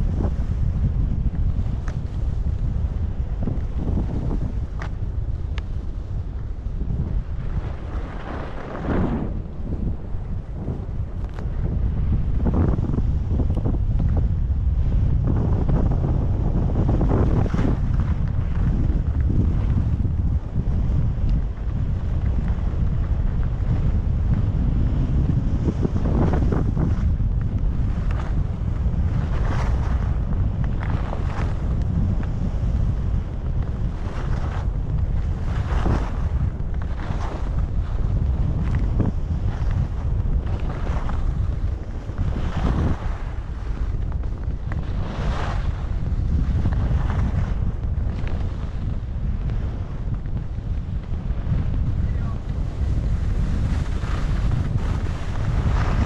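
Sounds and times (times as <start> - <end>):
skis scraping over snow: 0.0 - 56.0
wind rushing over microphone: 0.0 - 56.0.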